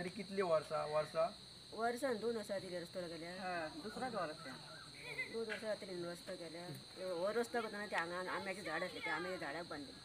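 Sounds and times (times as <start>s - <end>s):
crickets chirring: 0.0s - 10.0s
voices talking: 0.0s - 10.0s.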